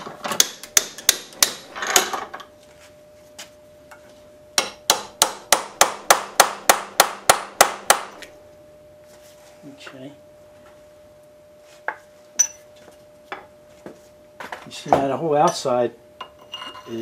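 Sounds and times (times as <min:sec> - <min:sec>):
hammer striking steel punch: 0:04.6 - 0:08.2
faint metallic ring: 0:11.9 - 0:12.7, 0:14.9 - 0:17.0.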